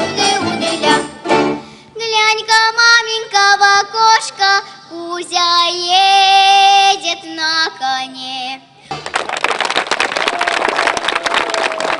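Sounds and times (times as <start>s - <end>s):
audience applauding: 8.9s - 11.9s.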